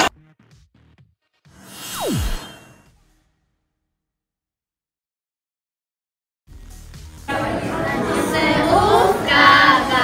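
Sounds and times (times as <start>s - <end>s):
children's choir singing: 7.3s - 10.0s.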